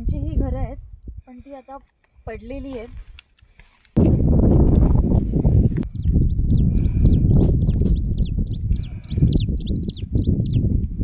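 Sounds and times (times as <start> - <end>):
wind buffeting microphone: 0.0 - 1.5, 4.0 - 11.0
bird chirping: 5.8 - 11.0.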